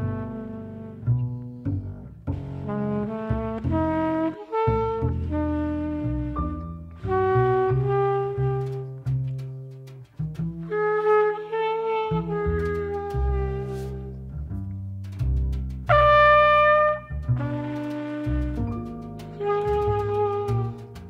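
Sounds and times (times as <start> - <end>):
trumpet: 0.0 - 1.2, 2.6 - 10.0, 10.6 - 14.4, 15.9 - 21.0
alto saxophone: 0.0 - 14.3, 15.9 - 21.0
double bass: 0.0 - 21.0.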